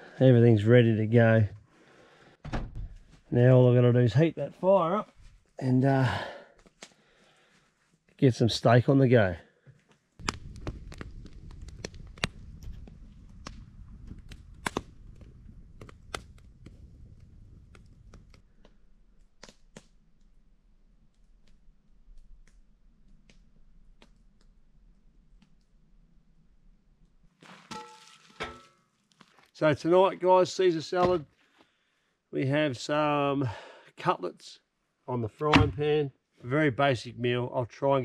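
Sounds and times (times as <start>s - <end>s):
campfire wood popping and snapping: 6.6s - 7.0s, 10.2s - 26.1s, 27.0s - 29.5s.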